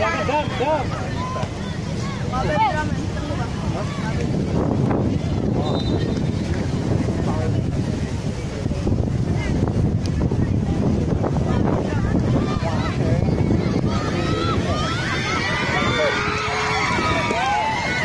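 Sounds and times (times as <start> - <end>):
voices calling out: 0.0 - 6.9, 11.4 - 18.0
wind buffeting microphone: 0.0 - 18.0.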